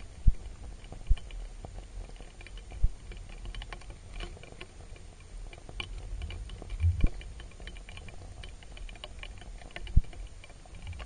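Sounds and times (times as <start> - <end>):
underwater clicking and crackling: 0.0 - 11.0
low underwater rumble: 6.0 - 8.7.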